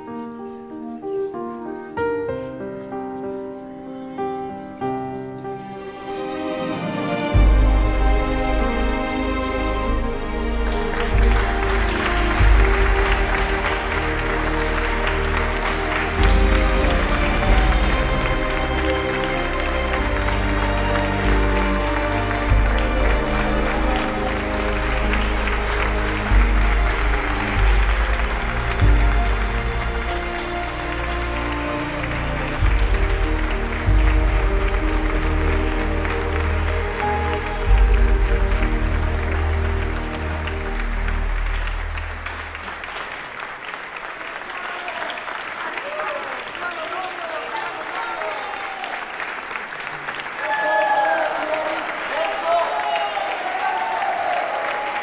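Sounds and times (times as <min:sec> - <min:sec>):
applause: 0:07.1 - 0:55.0.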